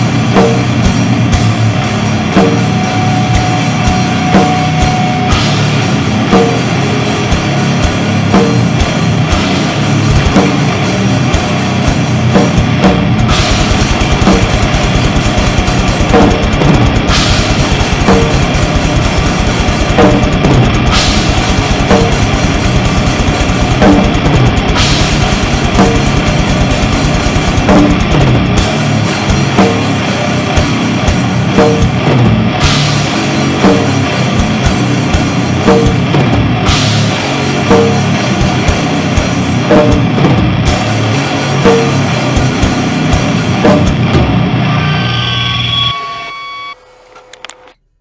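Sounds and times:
fast drum kit playing: 0.0s - 44.6s.

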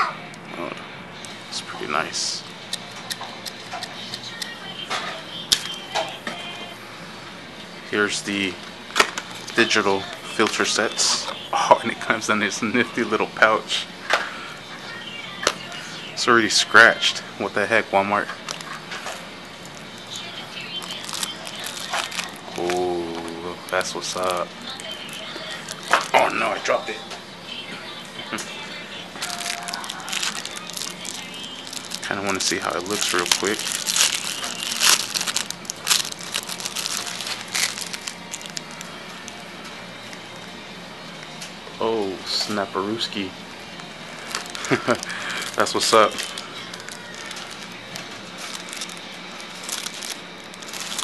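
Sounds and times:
plastic wrapper crinkling: 18.2s - 26.4s, 29.2s - 39.4s, 44.1s - 51.0s
fabric pouch rustling: 29.2s - 38.8s, 48.4s - 51.0s.

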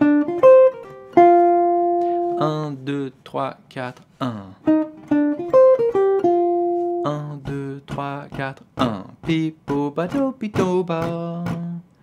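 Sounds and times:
jazz guitar phrase: 0.0s - 2.8s, 4.6s - 7.3s.

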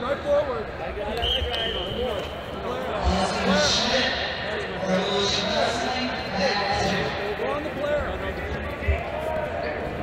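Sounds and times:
background voices of spectators: 0.0s - 10.0s.

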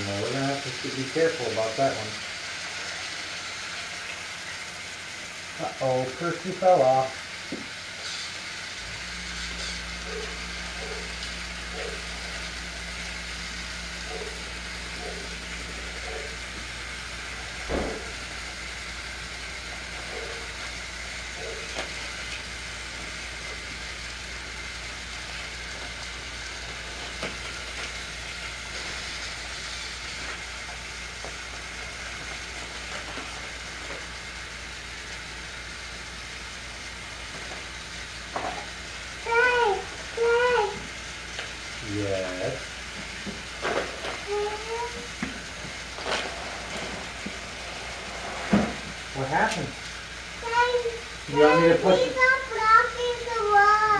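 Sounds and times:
toy train motors whirring: 0.0s - 53.9s
low hum: 8.7s - 41.9s.

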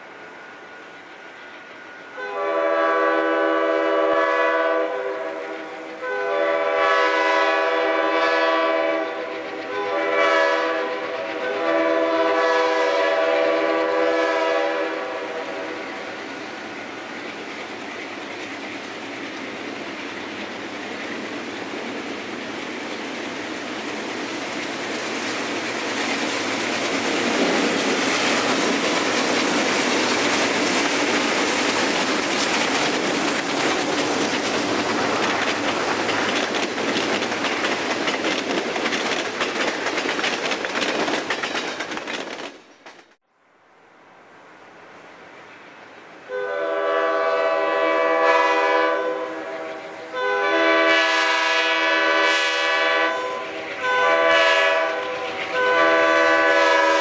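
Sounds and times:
train wheels: 0.0s - 43.2s, 45.4s - 57.0s
locomotive air horn: 2.1s - 15.7s, 46.3s - 57.0s.

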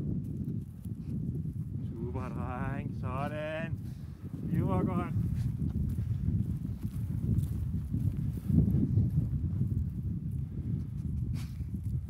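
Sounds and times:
footsteps on loose soil: 0.0s - 12.0s.

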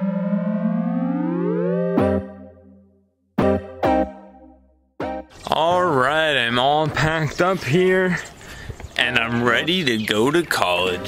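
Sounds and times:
synthesizer chord sliding upward: 0.0s - 5.2s.

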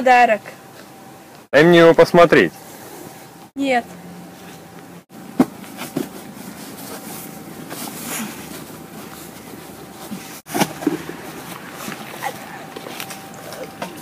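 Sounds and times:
gift box handling and rustling: 5.2s - 14.0s.

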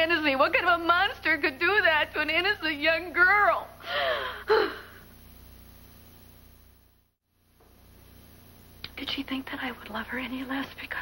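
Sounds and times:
woman sobbing gasp: 3.8s - 5.0s
woman sighing: 3.8s - 5.1s.

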